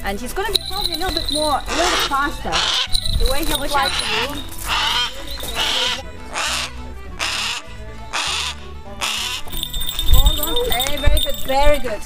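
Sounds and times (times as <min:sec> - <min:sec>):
low background music: 0:00.0 - 0:12.0
hawk screeching: 0:01.2 - 0:09.6.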